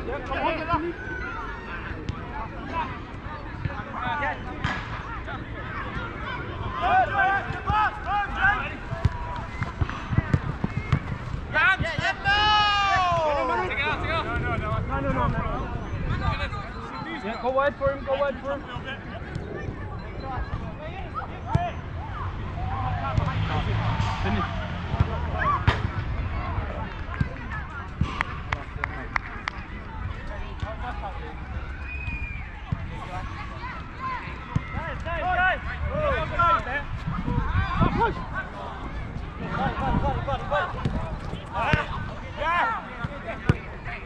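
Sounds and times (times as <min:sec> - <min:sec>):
footballers shouting: 0:00.0 - 0:44.0
wind rumble on microphone: 0:35.8 - 0:42.3.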